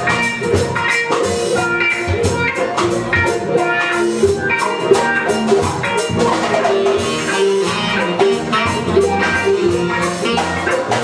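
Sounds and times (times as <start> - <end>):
drum kit beat: 0.0 - 11.0
guitar: 0.0 - 11.0
keyboard: 0.0 - 11.0.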